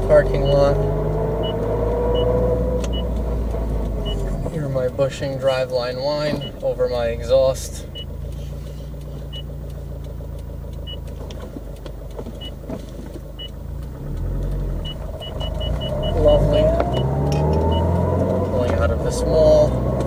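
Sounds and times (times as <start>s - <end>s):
driveline whine rising in pitch: 0.0s - 4.5s, 13.4s - 19.9s
car engine accelerating: 0.0s - 20.0s.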